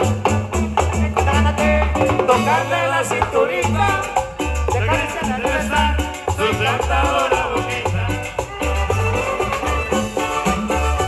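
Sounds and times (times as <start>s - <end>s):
drums: 0.0s - 11.0s
pulsing bass line: 0.0s - 11.0s
violins playing melody: 8.4s - 11.0s.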